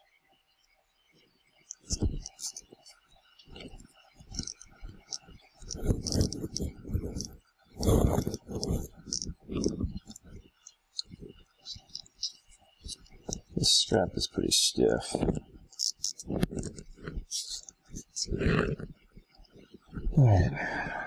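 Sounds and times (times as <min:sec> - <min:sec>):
leather strap rubbing: 0:01.8 - 0:02.6, 0:04.3 - 0:10.2, 0:15.7 - 0:18.3.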